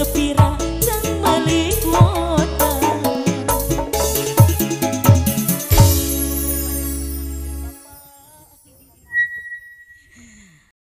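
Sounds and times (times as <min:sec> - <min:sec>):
short falling tone: 0:09.1 - 0:10.2.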